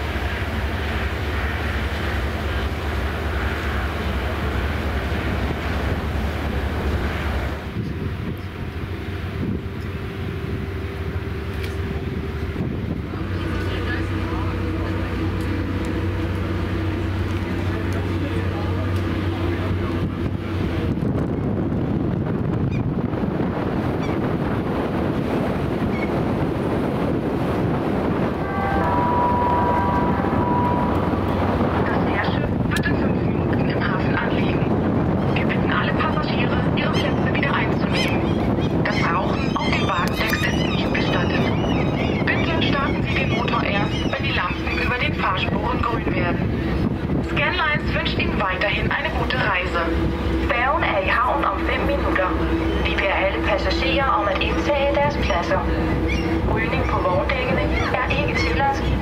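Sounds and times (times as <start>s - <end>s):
ferry engine drone: 0.0s - 59.0s
short high tone: 28.4s - 32.1s.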